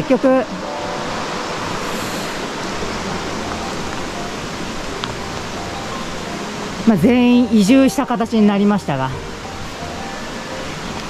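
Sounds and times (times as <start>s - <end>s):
mountain river rushing: 0.0s - 11.0s.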